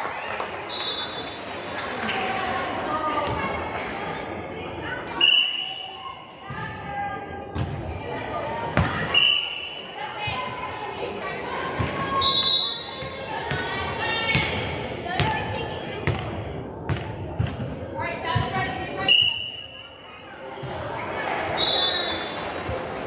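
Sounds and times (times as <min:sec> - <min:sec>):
volleyballs struck and bouncing: 0:16.0 - 0:18.6.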